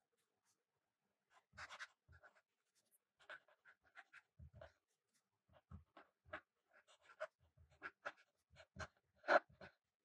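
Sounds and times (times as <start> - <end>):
pen scratching on paper: 1.3 - 9.8.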